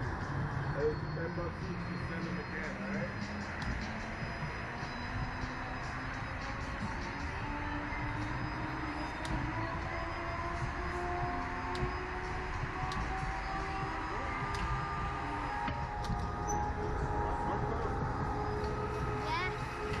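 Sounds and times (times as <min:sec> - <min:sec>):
background music: 0:00.0 - 0:20.0
low rumble: 0:09.3 - 0:20.0.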